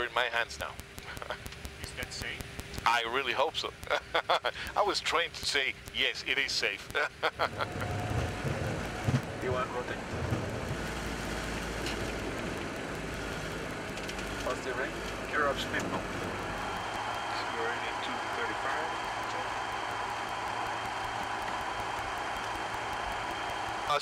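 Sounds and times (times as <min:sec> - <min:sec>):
low rumble: 0:07.5 - 0:16.8
jet engine and airflow rush: 0:07.5 - 0:24.0.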